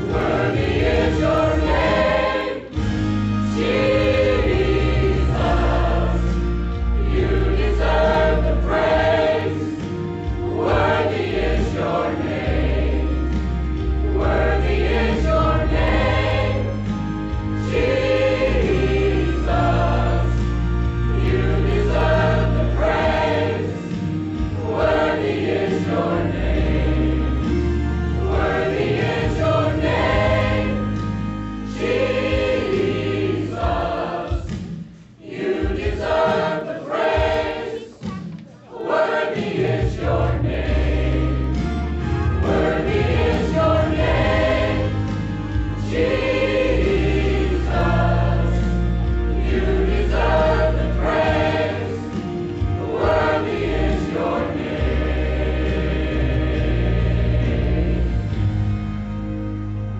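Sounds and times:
mixed choir singing: 0.0s - 59.0s.

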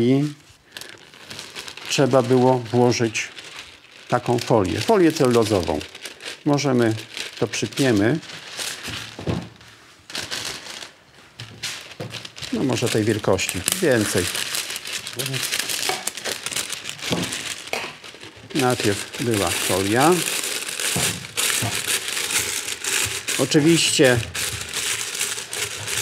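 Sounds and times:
plastic film crinkling: 0.0s - 26.0s.

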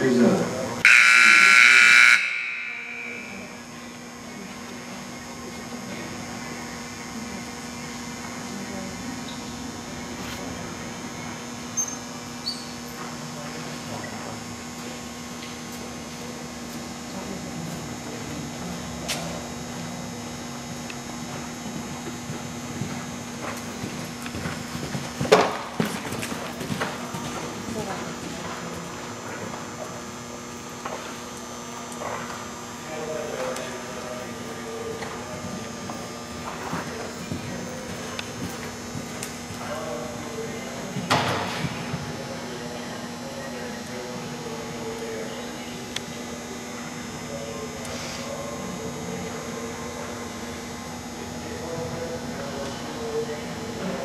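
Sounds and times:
steady electrical hum: 0.0s - 54.0s
horse hoofbeats on soft ground: 21.2s - 28.6s.

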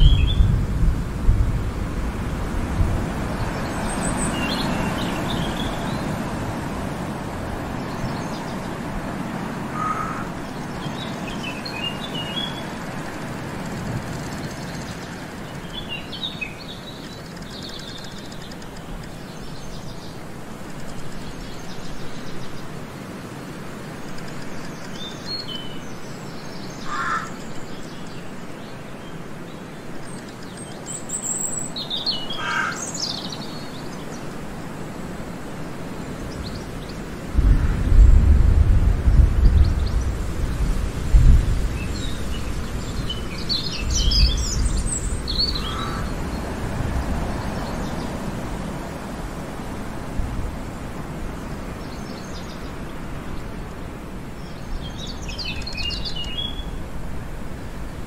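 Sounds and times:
songbirds chirping: 0.0s - 0.7s, 1.7s - 38.2s, 39.0s - 58.0s
steady forest hiss: 0.0s - 58.0s.

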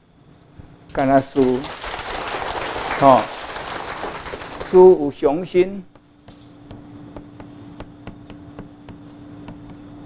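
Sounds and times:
chalk writing on chalkboard: 5.9s - 10.0s.

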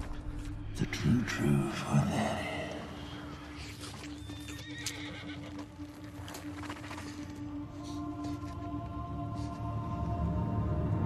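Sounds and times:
low music drone: 0.0s - 4.9s, 5.5s - 11.0s.

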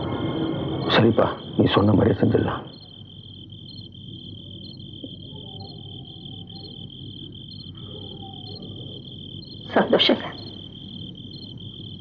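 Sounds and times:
crickets trilling: 0.0s - 12.0s
low background hum: 0.0s - 12.0s.

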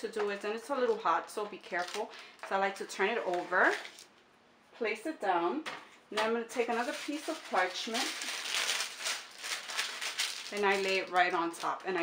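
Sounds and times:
parchment paper rustling: 0.3s - 2.5s, 3.1s - 4.1s, 6.6s - 12.0s.

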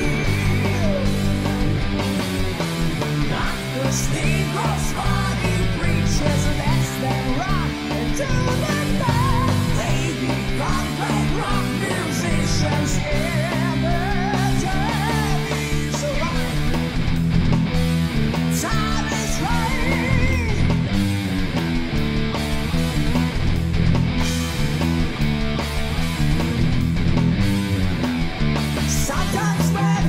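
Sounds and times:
bass guitar: 0.0s - 30.0s
distorted electric guitar lead: 0.0s - 30.0s
driving chords: 0.0s - 30.0s.

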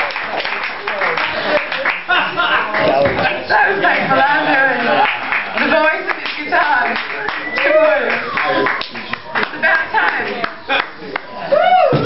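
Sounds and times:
audience clapping: 0.0s - 3.5s, 4.1s - 11.3s.

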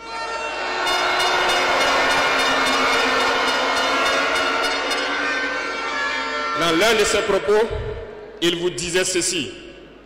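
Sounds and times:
crowd blowing horns: 0.0s - 7.3s.

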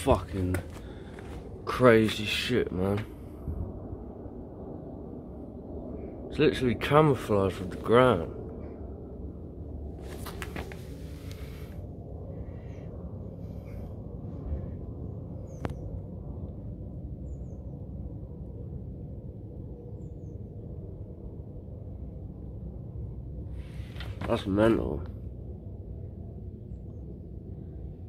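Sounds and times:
low outdoor rumble: 0.0s - 28.0s.

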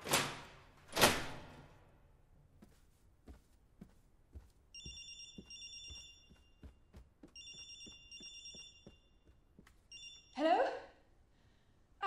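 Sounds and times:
soft footsteps: 2.3s - 10.2s
telephone ringing: 4.8s - 6.7s, 7.4s - 9.3s, 9.9s - 10.4s.

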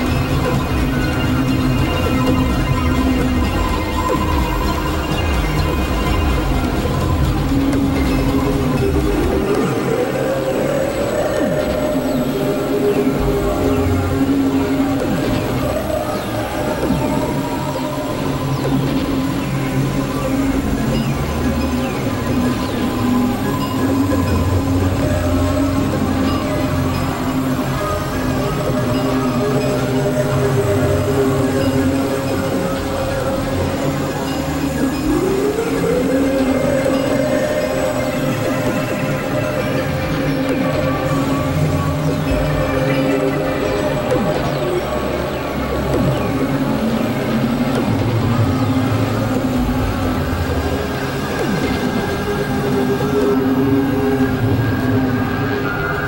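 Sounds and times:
low synthesizer drone: 0.0s - 56.0s
noisy texture with falling glides: 0.0s - 56.0s.

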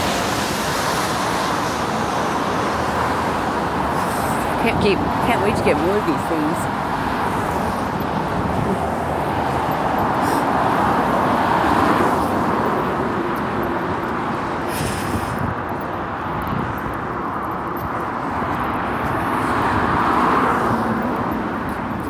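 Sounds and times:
car passing: 0.0s - 22.0s.

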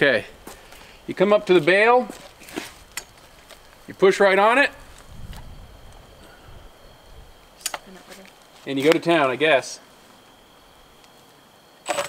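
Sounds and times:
faint handling rustles: 0.4s - 4.0s, 7.8s - 9.2s.

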